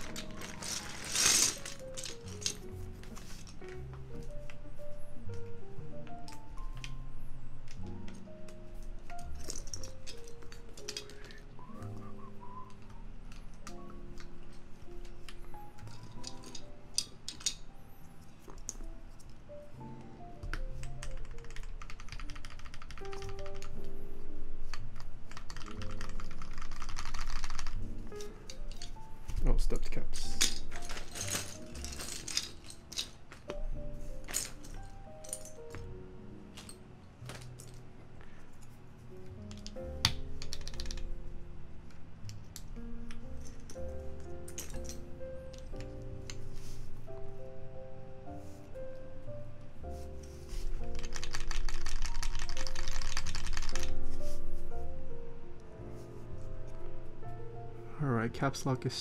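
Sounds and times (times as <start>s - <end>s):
keyboard keys clacking: 0.0s - 38.4s, 48.4s - 55.8s
background music: 0.0s - 59.0s.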